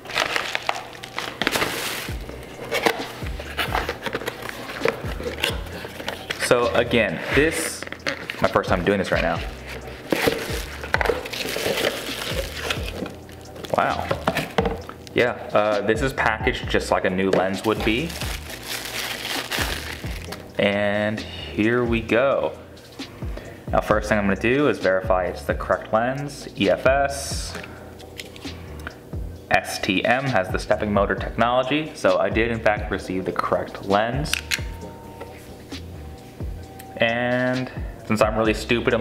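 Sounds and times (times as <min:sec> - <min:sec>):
plastic wrapping crinkling: 0:00.0 - 0:06.7, 0:07.7 - 0:15.0, 0:17.5 - 0:20.5
cardboard packaging rustling: 0:00.0 - 0:14.9, 0:17.4 - 0:20.5.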